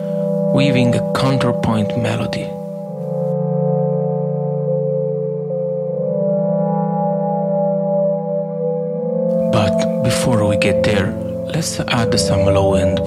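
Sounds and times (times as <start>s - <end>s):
synthesizer ambient drone: 0.0s - 13.0s.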